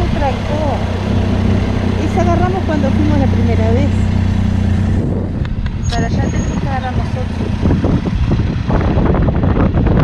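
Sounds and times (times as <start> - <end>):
motorcycle engine running: 0.0 - 10.0
road and wind noise: 0.0 - 10.0.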